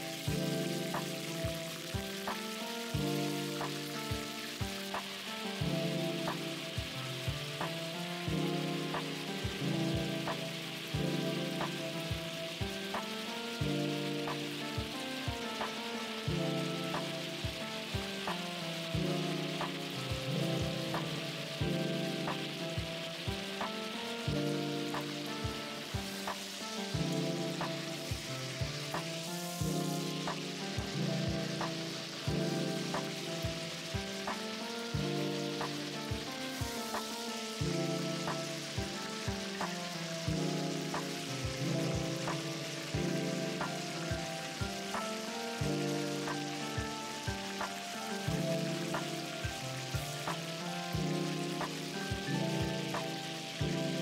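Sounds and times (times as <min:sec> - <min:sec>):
background music with beat: 0:00.0 - 0:54.0
meat sizzling in oil: 0:00.0 - 0:54.0.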